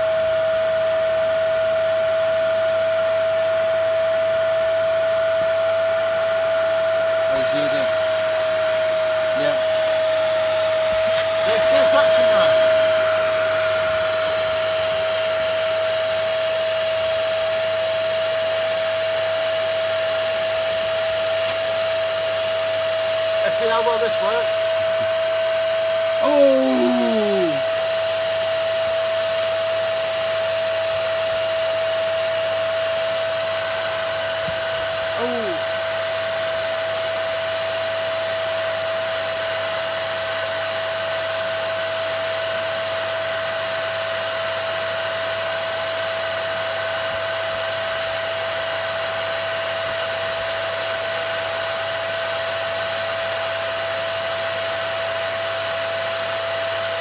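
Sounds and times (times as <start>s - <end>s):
vacuum cleaner motor whine: 0.0s - 57.0s.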